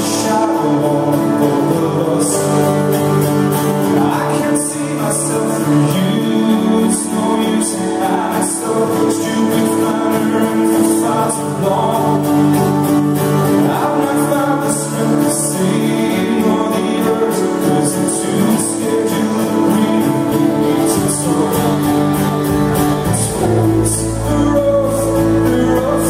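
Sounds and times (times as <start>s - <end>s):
live band playing: 0.0s - 26.0s
man singing lead vocal: 0.0s - 26.0s.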